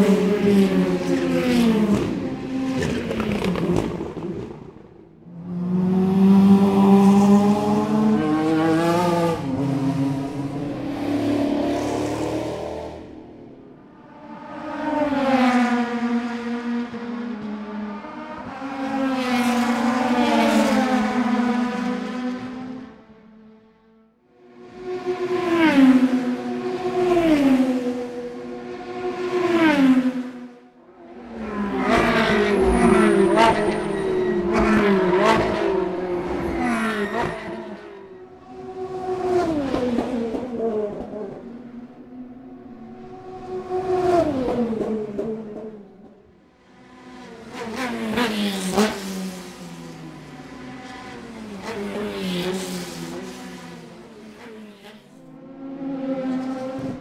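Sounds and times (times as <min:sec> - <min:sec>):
race cars passing at high revs: 0:00.0 - 0:57.0.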